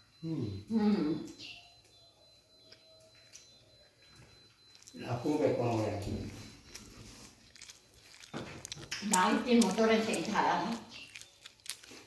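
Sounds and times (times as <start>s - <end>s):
people conversing: 0.1s - 11.2s.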